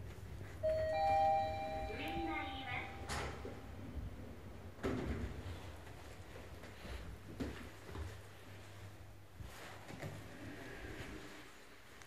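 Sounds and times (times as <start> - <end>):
elevator arrival chime: 0.6 - 3.8.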